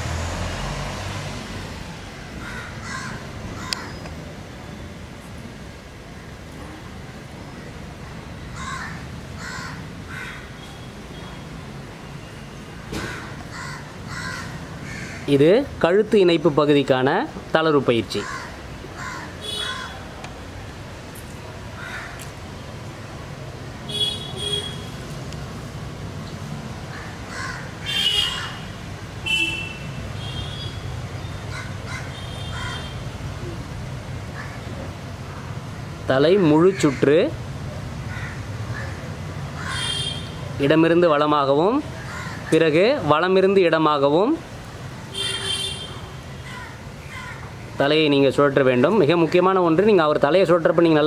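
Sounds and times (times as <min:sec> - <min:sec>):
low background noise: 0:00.0 - 0:51.0
crows cawing: 0:02.4 - 0:04.0, 0:08.6 - 0:10.6, 0:13.0 - 0:15.3, 0:18.2 - 0:20.0, 0:21.8 - 0:22.2, 0:26.9 - 0:28.8, 0:31.5 - 0:32.9, 0:34.3 - 0:34.7, 0:36.7 - 0:37.2, 0:38.1 - 0:40.3, 0:42.0 - 0:42.6, 0:46.4 - 0:47.5
bird calling: 0:02.4 - 0:04.2, 0:18.2 - 0:20.0, 0:29.3 - 0:32.9, 0:39.6 - 0:40.4.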